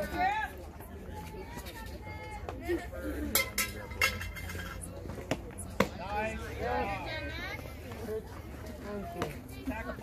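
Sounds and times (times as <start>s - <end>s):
drawn-out shouting voices: 0.0s - 3.4s, 5.8s - 10.0s.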